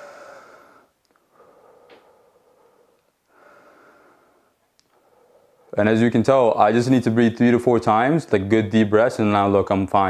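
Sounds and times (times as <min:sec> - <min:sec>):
man breathing deeply: 0:00.0 - 0:05.8.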